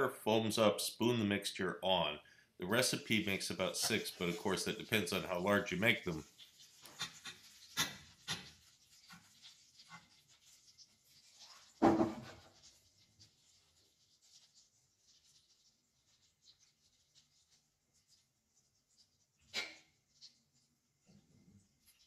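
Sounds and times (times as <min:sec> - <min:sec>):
oil sizzling and crackling in pan: 0:03.0 - 0:21.0.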